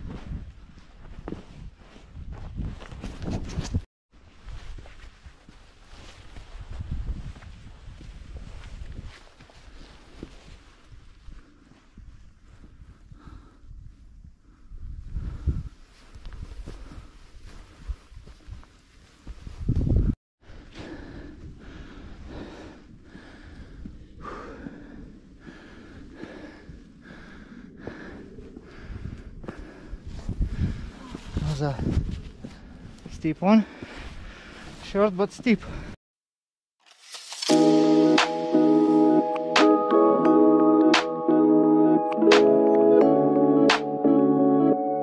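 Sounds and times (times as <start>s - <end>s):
wind gusting across microphone: 6.2s - 20.2s, 21.1s - 34.7s
hard breathing: 11.2s - 18.1s, 20.4s - 31.4s, 32.4s - 34.8s.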